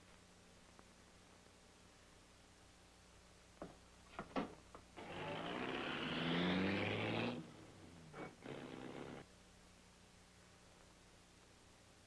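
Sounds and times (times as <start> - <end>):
car engine revving: 5.0 - 9.2.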